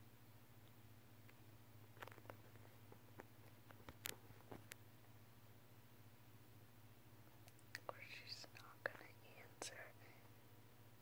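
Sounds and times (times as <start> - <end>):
low steady hum: 0.0 - 11.0
faint whispering on a phone: 7.8 - 10.4.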